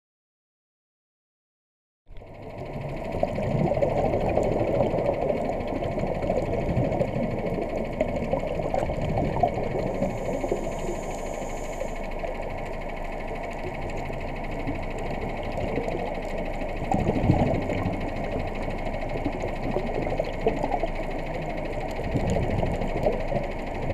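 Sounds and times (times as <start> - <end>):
crackling underwater noise: 2.1 - 23.9.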